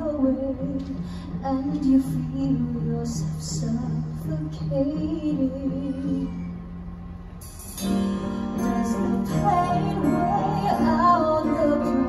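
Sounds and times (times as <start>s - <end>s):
rock band playing: 7.4s - 12.0s.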